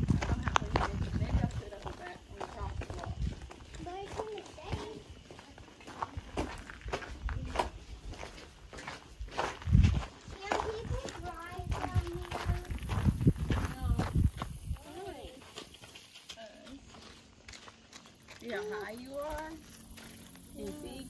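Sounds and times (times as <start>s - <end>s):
wind rumbling on microphone: 0.0s - 3.9s, 9.2s - 15.4s
indistinct voices talking: 0.0s - 8.2s, 10.2s - 17.0s, 18.3s - 21.0s
footsteps on gravel: 0.0s - 21.0s.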